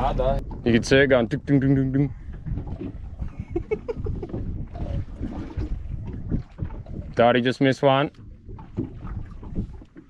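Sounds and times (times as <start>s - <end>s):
water lapping against boat hull: 0.0s - 10.0s
wind buffeting microphone: 0.0s - 10.0s.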